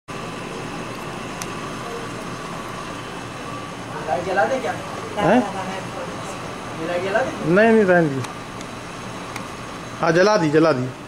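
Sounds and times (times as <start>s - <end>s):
faint constant hum: 0.1s - 11.0s.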